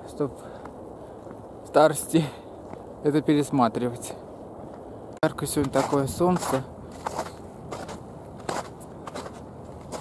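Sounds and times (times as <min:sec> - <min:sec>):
footsteps on icy ground: 0:00.5 - 0:01.6, 0:02.5 - 0:03.0, 0:04.6 - 0:10.0.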